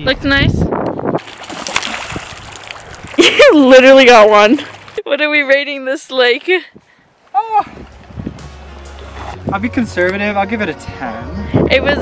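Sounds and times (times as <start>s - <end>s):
stone splashing on water: 1.2s - 3.4s
rippling water: 1.2s - 5.1s.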